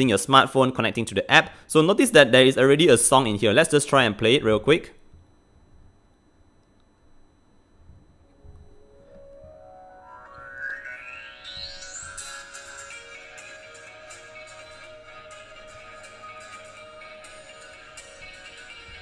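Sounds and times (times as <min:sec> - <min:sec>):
rising pitch tone: 0:07.8 - 0:17.5
song from small speaker: 0:07.8 - 0:19.0.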